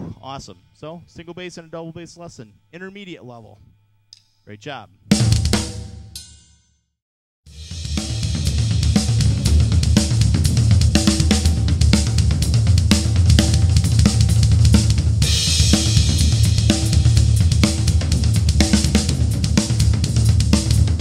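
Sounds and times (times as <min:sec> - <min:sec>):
bass drum: 0:07.5 - 0:21.0.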